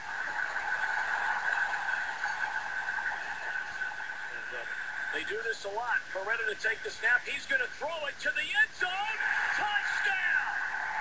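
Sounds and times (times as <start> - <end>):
stadium crowd cheering: 0.0 - 6.9, 7.8 - 11.0.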